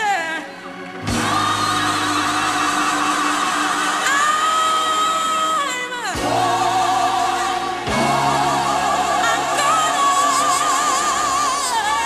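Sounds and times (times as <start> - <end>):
gospel group singing: 1.0 - 12.0.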